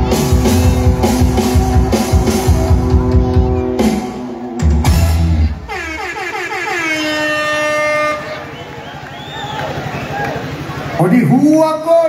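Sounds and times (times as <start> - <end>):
live rock band playing: 0.0 - 6.0.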